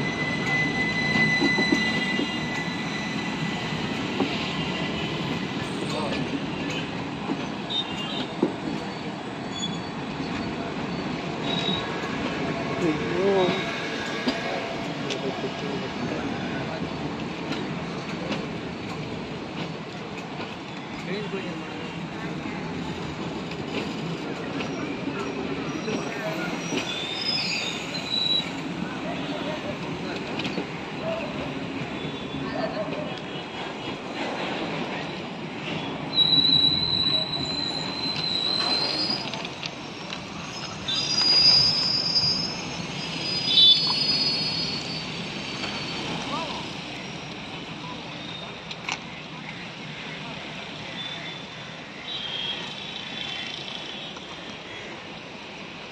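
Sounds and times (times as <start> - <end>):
high-pitched wheel squeals: 0.0 - 3.9, 24.7 - 28.6, 36.1 - 39.5, 40.4 - 46.4
train wheels rumbling on rails: 0.0 - 55.9.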